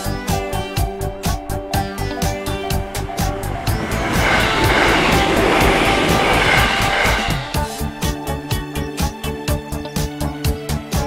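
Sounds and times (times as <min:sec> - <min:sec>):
background music: 0:00.0 - 0:11.0
electric train passing: 0:00.4 - 0:08.7.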